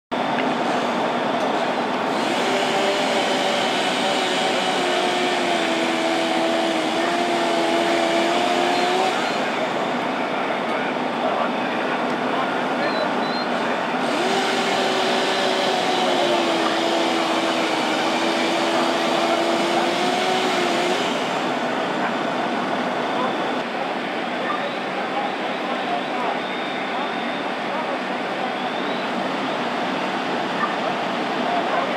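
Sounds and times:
motor humming: 1.9 - 10.1, 14.0 - 21.9.

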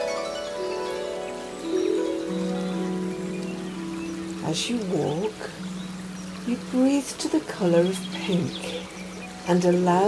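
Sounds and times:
harp playing slow notes: 0.0 - 6.5.

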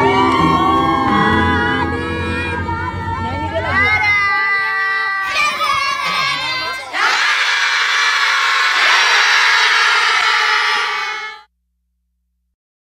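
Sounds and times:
children cheering and shouting: 0.0 - 11.5.

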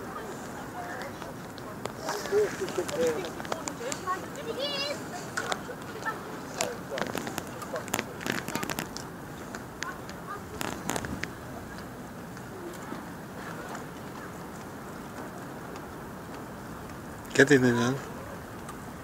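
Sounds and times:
sea noise: 0.0 - 19.0
wind: 0.0 - 19.0.

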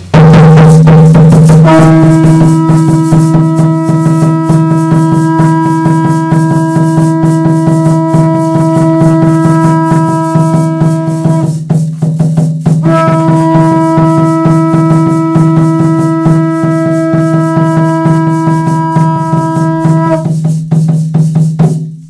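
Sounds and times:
hand frame drums beaten rapidly: 0.0 - 22.0
long held note: 1.3 - 11.7, 12.8 - 20.4.

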